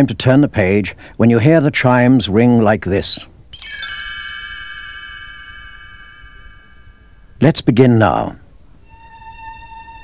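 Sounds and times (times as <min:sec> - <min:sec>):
struck chime ringing: 0:03.5 - 0:07.5.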